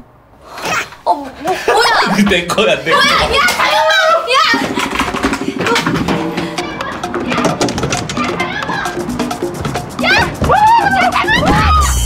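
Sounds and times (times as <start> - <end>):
people shouting excitedly: 2.9 - 4.6, 10.0 - 12.0.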